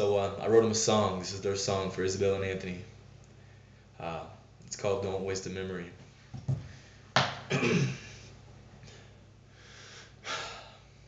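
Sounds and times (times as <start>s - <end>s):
man clearing his throat: 7.5s - 8.2s
man coughing: 7.5s - 8.2s.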